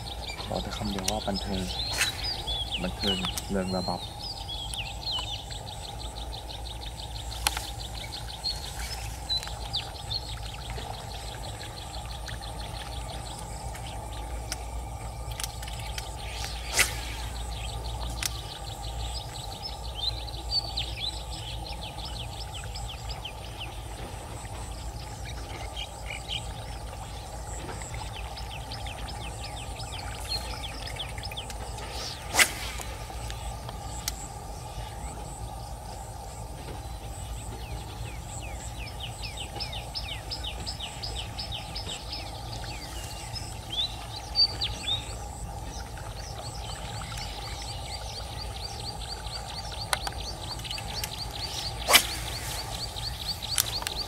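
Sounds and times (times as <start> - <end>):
small birds chirping: 0.0 - 54.0
sharp clicks: 49.9 - 54.0.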